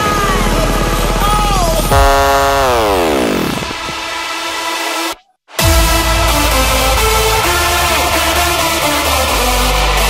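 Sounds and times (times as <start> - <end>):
electronic dance music: 1.3 - 10.0
buzzy synth chord sliding down: 1.9 - 4.6.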